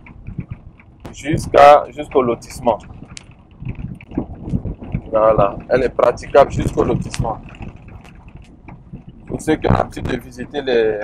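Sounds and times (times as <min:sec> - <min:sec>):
car engine and tyres rumbling: 0:00.0 - 0:11.0
car thumping on rough road: 0:00.0 - 0:11.0.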